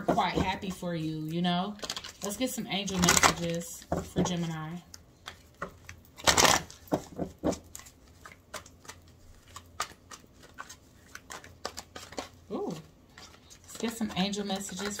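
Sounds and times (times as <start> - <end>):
cards being shuffled: 1.8 - 15.0.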